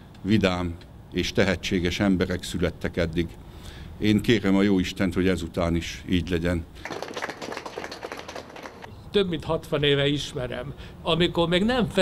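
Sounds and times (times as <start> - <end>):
small crowd applause: 6.8 - 8.9.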